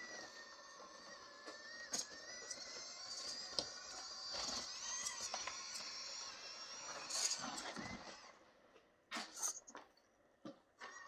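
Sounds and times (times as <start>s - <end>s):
toy car motor whining: 0.0s - 8.4s.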